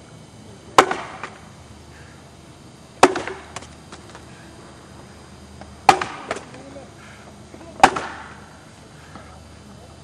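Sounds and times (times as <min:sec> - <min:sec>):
axe chopping wood: 0:00.8 - 0:01.4, 0:03.0 - 0:03.7, 0:05.8 - 0:06.6, 0:07.8 - 0:08.4.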